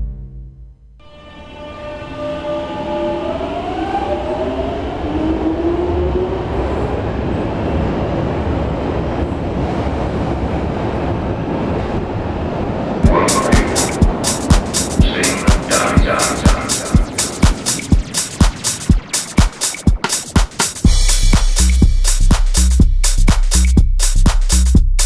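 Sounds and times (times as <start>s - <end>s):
train rumbling: 1.9s - 21.1s.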